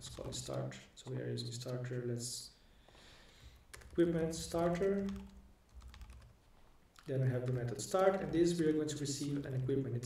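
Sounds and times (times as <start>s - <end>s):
keyboard typing clicks: 5.0s - 6.3s.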